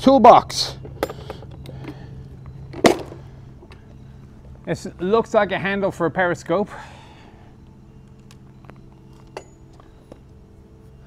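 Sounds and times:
steady low hum: 0.0 - 11.0
small metal parts clinking: 0.8 - 4.0, 8.0 - 10.3.

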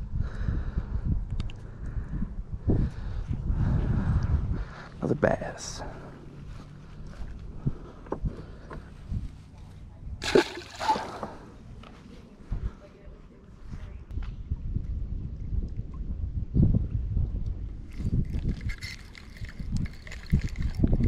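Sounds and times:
fish splashing into water: 10.2 - 11.5.

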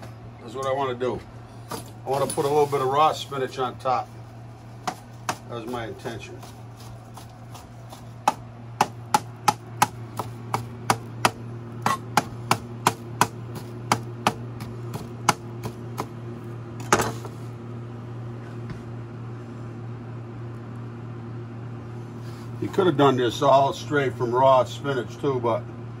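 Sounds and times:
steady low hum: 0.0 - 26.0
knife chopping on cutting board: 4.8 - 5.5, 7.1 - 16.1.

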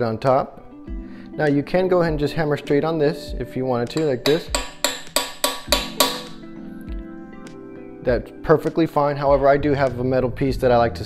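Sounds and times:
background music: 0.0 - 11.0
hammer striking metal socket: 4.0 - 6.4.

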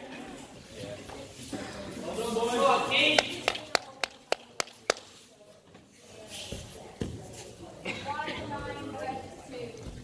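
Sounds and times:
sharp hand claps: 3.1 - 5.1.

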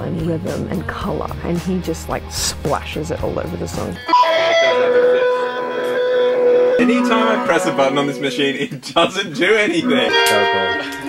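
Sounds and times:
held electronic synth tone: 4.0 - 8.6.

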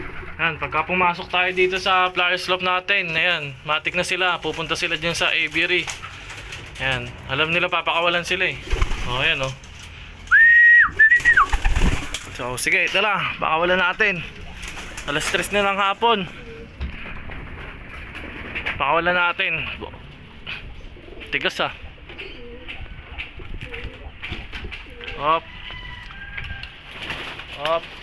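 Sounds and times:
pigeons cooing: 0.0 - 2.0, 13.2 - 18.8, 19.6 - 26.2
person whistling high notes: 10.3 - 11.5.

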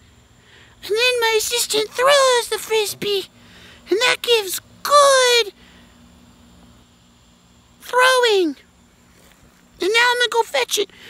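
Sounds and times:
person speaking: 0.8 - 5.6, 9.8 - 10.9.

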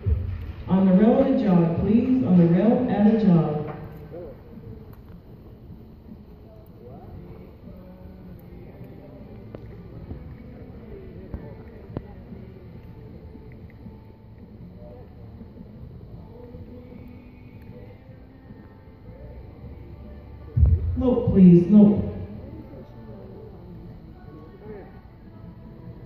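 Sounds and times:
background murmur: 0.0 - 26.0.

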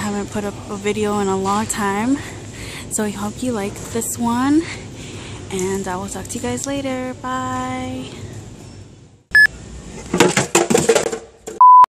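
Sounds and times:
loud electronic beep: 9.3 - 9.5.

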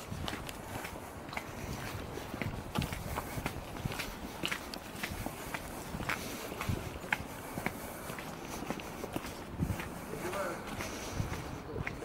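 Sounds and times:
footsteps on wet asphalt: 0.0 - 12.0.

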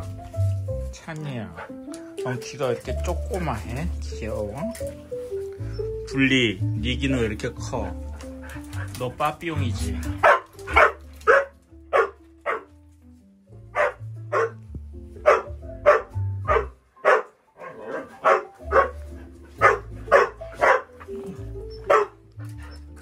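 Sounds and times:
background music with bass line: 0.0 - 16.8, 17.7 - 23.0
dog barking: 10.1 - 12.7, 13.7 - 14.6, 15.2 - 19.0, 19.6 - 22.7.

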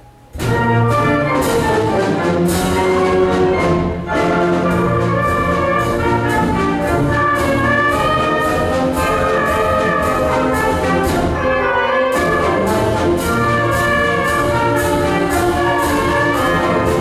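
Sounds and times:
concert band playing a march: 0.2 - 17.0
percussion strokes: 0.3 - 17.0.

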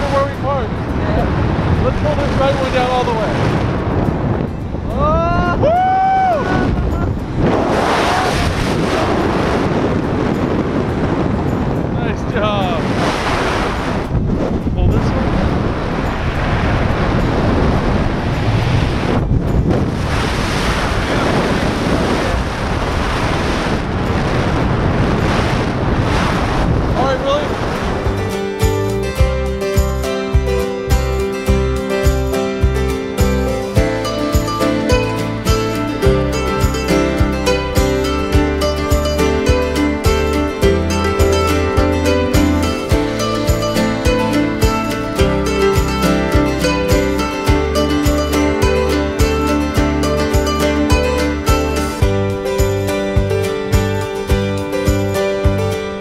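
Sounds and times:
wind rushing over microphone: 0.0 - 56.0
person whooping: 5.0 - 7.1
music with beat and plucked guitar: 27.8 - 56.0.

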